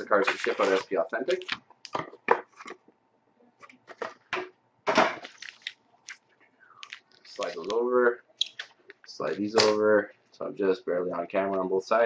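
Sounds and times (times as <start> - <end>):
foil packs crackling: 5.2 - 7.9.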